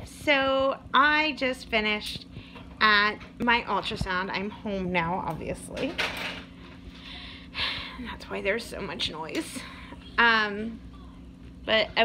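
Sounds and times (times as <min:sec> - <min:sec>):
low background hum: 0:00.0 - 0:12.0
woman breathing: 0:06.8 - 0:08.2.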